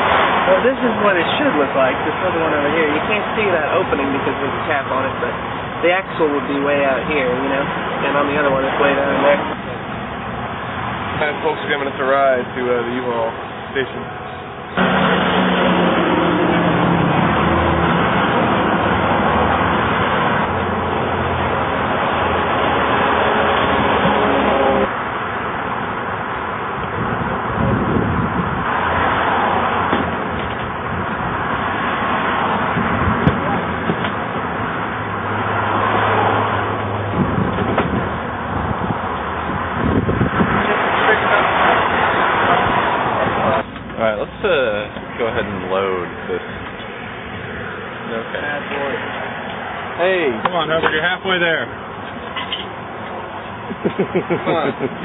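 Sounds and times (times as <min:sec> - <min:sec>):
traffic noise: 0:00.0 - 0:55.0.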